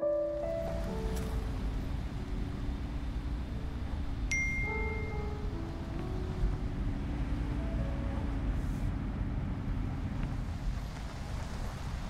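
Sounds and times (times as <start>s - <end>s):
soft piano notes: 0.0s - 9.0s
low rumble inside a car: 0.3s - 12.0s
phone notification ding: 4.3s - 5.2s.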